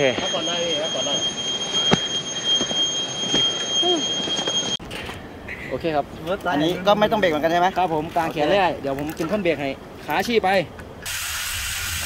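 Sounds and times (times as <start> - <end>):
high-pitched whine: 0.0 - 4.8.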